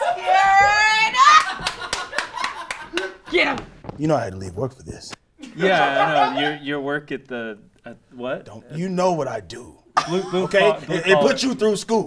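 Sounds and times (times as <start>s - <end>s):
hand claps: 1.4s - 3.7s.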